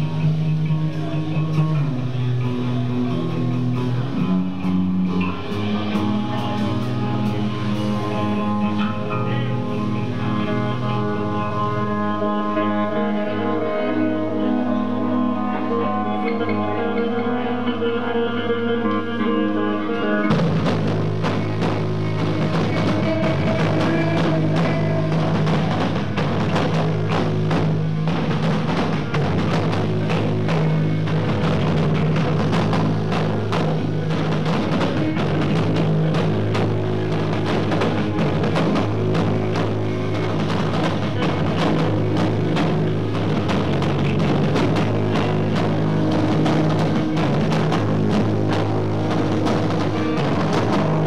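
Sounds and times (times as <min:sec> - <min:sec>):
ringing guitar notes: 0:00.0 - 0:51.0
screamo band playing: 0:00.0 - 0:51.0.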